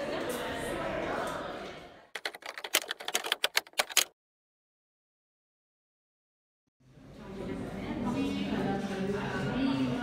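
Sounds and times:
keyboard typing clicks: 2.2s - 4.1s.

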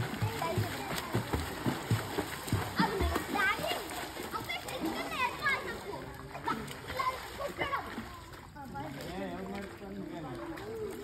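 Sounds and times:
water splashing in a pool: 0.0s - 11.0s.

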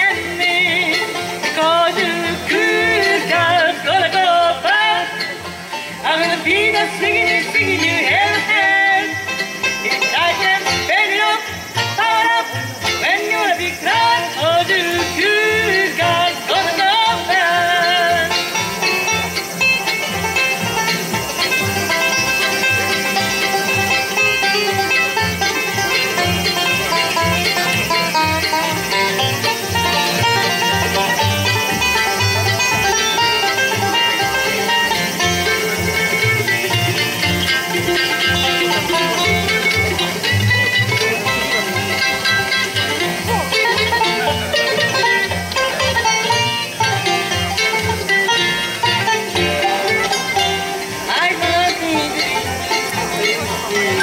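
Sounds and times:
acoustic guitar: 0.0s - 54.0s
banjo: 0.0s - 54.0s
mandolin: 0.0s - 54.0s
upright bass: 0.0s - 54.0s.

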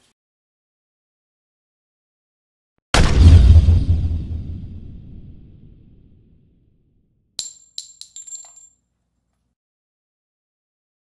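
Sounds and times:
low boom: 3.0s - 6.7s
sharp metallic clinks: 7.4s - 8.8s.

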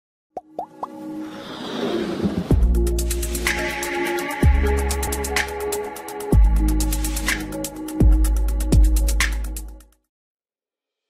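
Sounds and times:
rushing swell: 0.9s - 6.3s.

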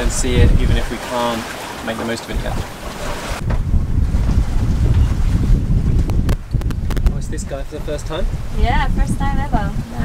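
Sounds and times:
wind buffeting microphone: 0.0s - 1.7s, 2.3s - 10.0s.

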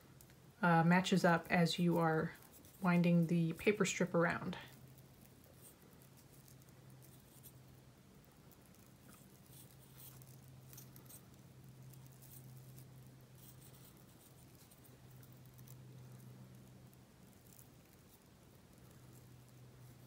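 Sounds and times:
steady low hum: 0.0s - 20.0s
crepe paper rustling: 2.2s - 2.9s.

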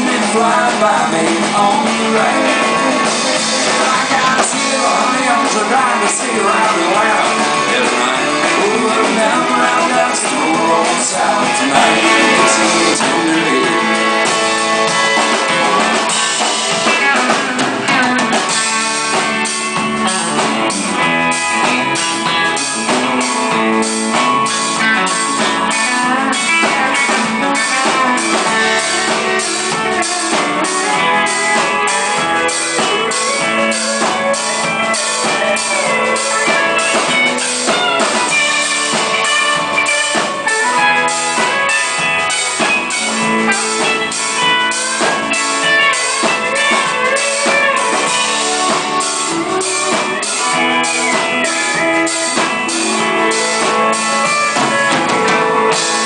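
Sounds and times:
drum kit beat: 0.0s - 56.0s
electric guitars: 0.0s - 56.0s.

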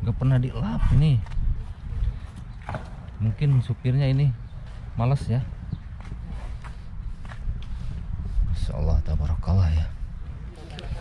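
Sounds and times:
footsteps on pavement: 0.2s - 11.0s.

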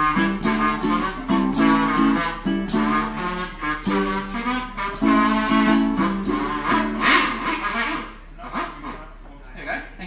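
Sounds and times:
acoustic guitar: 0.0s - 8.7s
harmonica: 0.0s - 9.2s.

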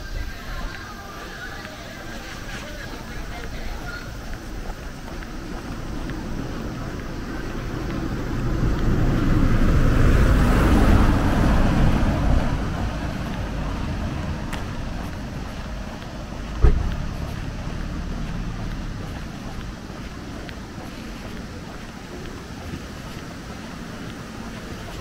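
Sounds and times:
rushing noise: 0.0s - 25.0s
short thump: 16.5s - 17.1s.

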